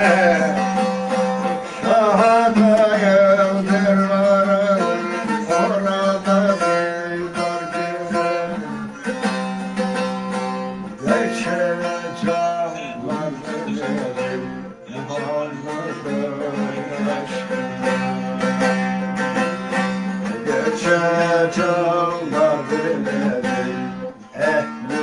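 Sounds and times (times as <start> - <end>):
strummed long-necked lute melody: 0.0 - 25.0.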